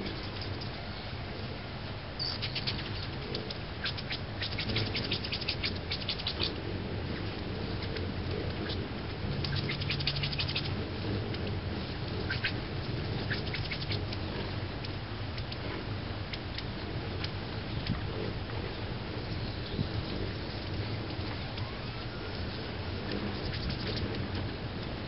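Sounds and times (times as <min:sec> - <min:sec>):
hummingbird chip notes: 0:00.0 - 0:25.0
hummingbird wings humming: 0:00.0 - 0:25.0.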